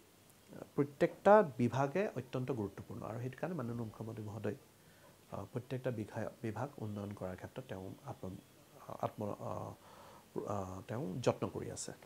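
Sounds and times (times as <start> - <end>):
man speaking: 0.5 - 4.7, 5.3 - 12.0.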